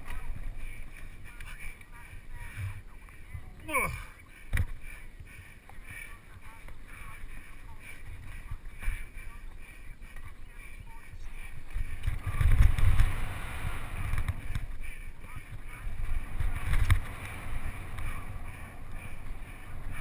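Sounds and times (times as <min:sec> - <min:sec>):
bike rattling: 0:00.0 - 0:20.0
wind rumbling on microphone: 0:00.0 - 0:20.0.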